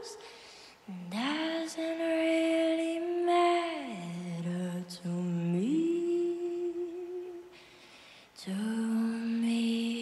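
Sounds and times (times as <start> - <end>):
girl singing softly: 0.0 - 10.0.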